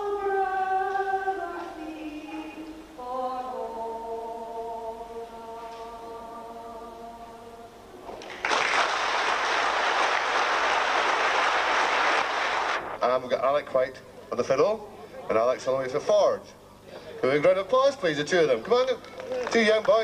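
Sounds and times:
woman singing unaccompanied: 0:00.0 - 0:07.8
audience applause: 0:08.2 - 0:13.0.

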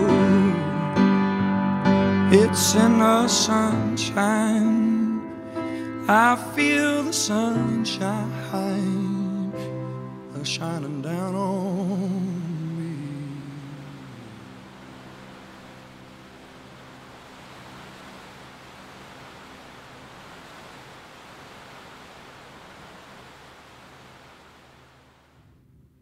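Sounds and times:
heavy rain on a roof: 0:11.9 - 0:25.4.

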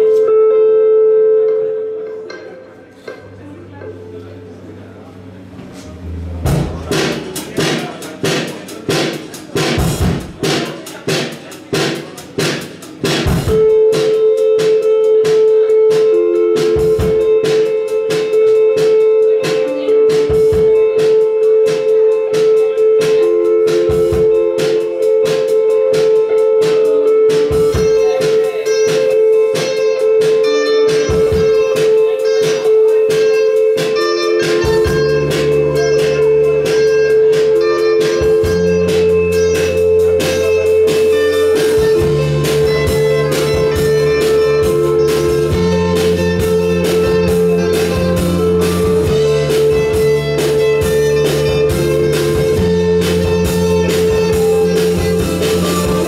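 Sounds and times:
live rock band playing: 0:00.0 - 0:56.0
evenly spaced strikes: 0:05.4 - 0:19.8.

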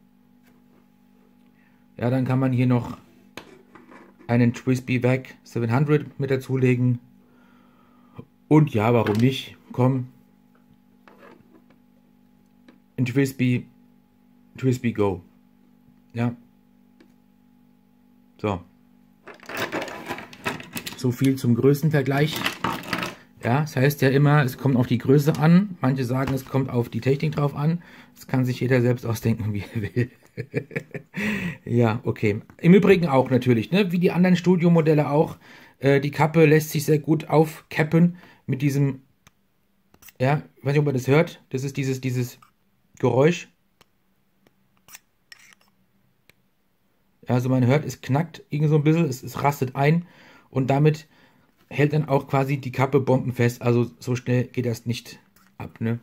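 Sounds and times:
pens rattling together: 0:19.3 - 0:21.0, 0:22.3 - 0:23.2
pen cap scraping: 0:44.8 - 0:45.8.

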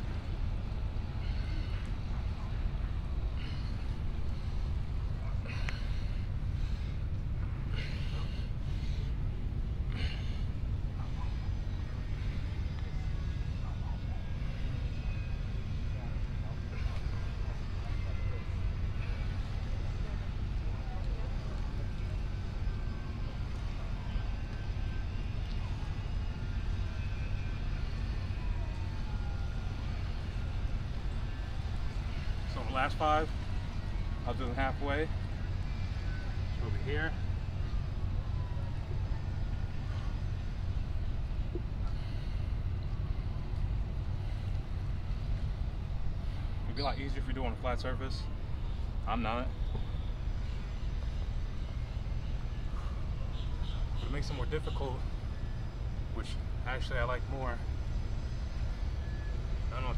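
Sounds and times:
low outdoor rumble: 0:00.0 - 0:59.9
man's sharp breaths of exertion: 0:03.2 - 0:10.7.

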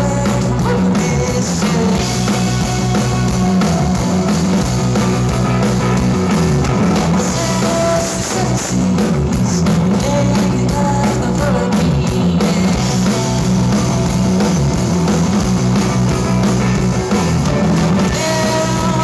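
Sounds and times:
drum kit: 0:00.0 - 0:19.0
electric guitars: 0:00.0 - 0:19.0.

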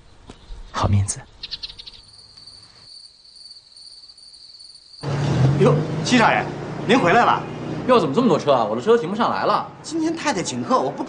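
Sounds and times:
crickets chirping: 0:00.0 - 0:05.1.

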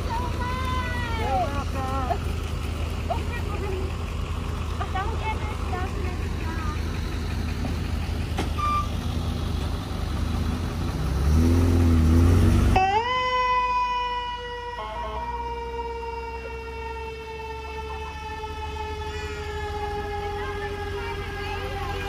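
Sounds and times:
ambulance engines rumbling: 0:00.0 - 0:22.0
siren: 0:12.7 - 0:22.0.

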